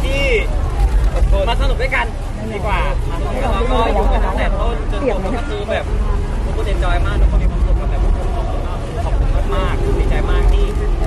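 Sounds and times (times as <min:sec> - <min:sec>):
low rumble: 0:00.0 - 0:11.0
voices talking: 0:00.0 - 0:11.0.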